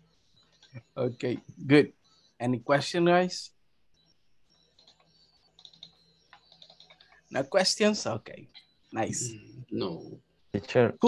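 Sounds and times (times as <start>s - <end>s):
faint keyboard typing: 0.0s - 2.4s, 3.8s - 9.5s.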